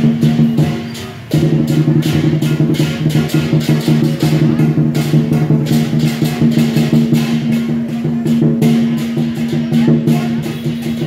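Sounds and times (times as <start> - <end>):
cymbals clashing: 0.0 - 11.0
drum beats: 0.0 - 11.0.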